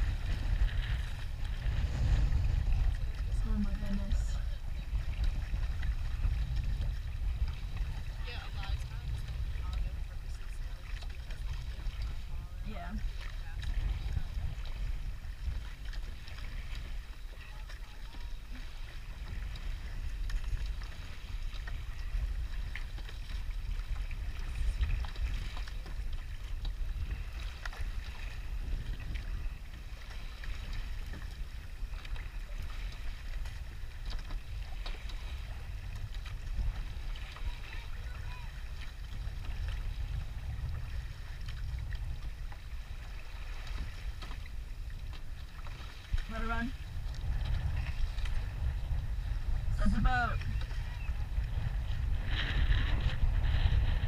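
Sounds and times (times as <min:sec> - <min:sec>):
water washing along hull: 0:00.0 - 0:54.0
wind rumble on microphone: 0:00.0 - 0:54.0.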